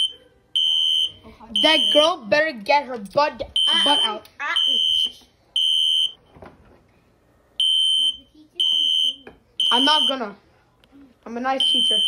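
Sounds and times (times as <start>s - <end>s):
smoke alarm beeping: 0.0s - 2.2s, 3.6s - 6.2s, 7.6s - 10.3s, 11.6s - 12.0s.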